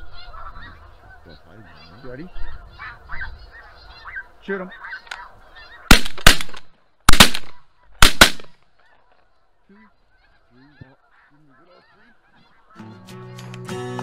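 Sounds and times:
snow goose calls: 0:00.0 - 0:06.0, 0:08.8 - 0:12.8
shotgun blasts: 0:05.9 - 0:08.6.

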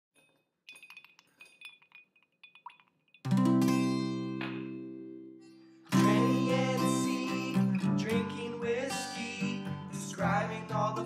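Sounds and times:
ice cubes clinking in glass: 0:00.2 - 0:03.6.

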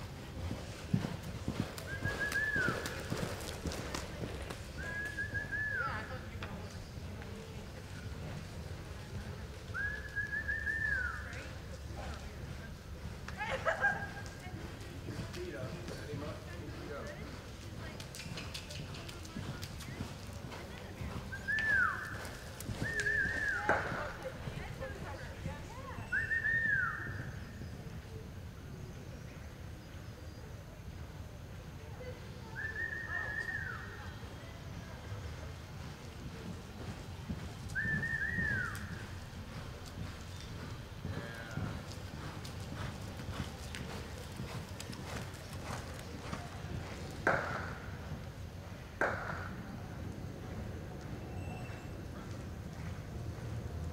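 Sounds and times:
horse hoofbeats on dirt: 0:00.0 - 0:27.8, 0:34.6 - 0:50.0, 0:50.9 - 0:53.9.

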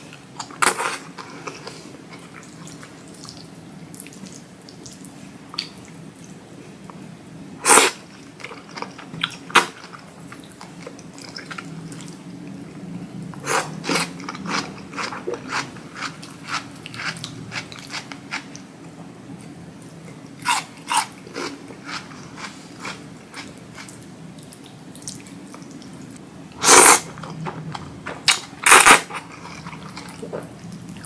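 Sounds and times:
noodle slurping: 0:26.6 - 0:27.2, 0:28.6 - 0:30.1.

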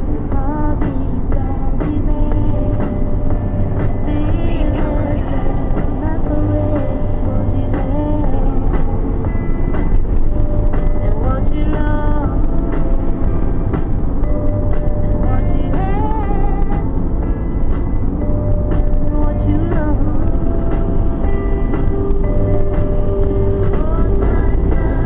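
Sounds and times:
music with singing on radio: 0:00.0 - 0:25.0
van engine and tyres rumbling: 0:00.0 - 0:25.0.

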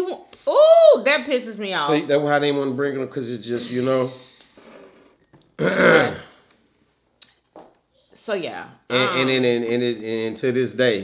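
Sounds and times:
person clearing throat: 0:05.6 - 0:06.4.

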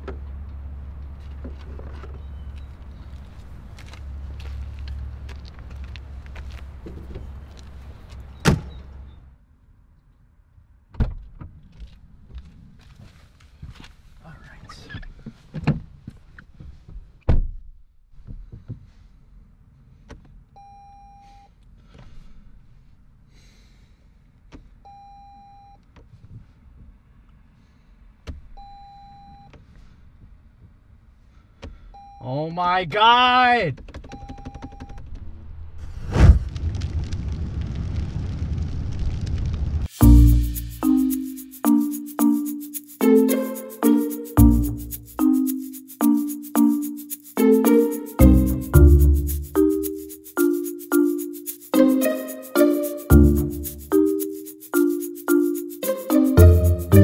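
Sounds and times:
car door slamming: 0:08.4 - 0:08.7.

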